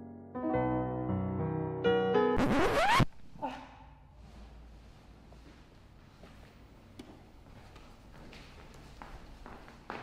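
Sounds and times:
soft piano music: 0.0s - 2.4s
record scratch: 2.4s - 3.2s.

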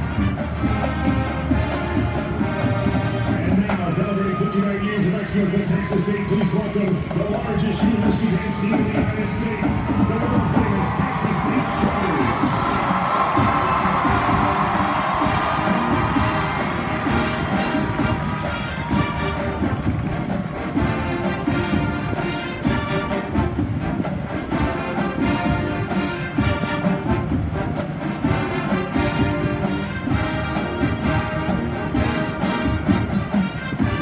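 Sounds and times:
crowd cheering: 0.0s - 23.6s
marching band playing: 0.0s - 34.0s.

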